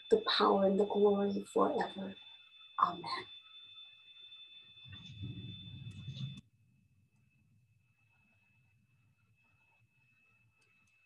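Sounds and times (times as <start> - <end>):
high-pitched electronic whine: 0.0 - 6.4
rustling and low bumps: 4.9 - 6.4.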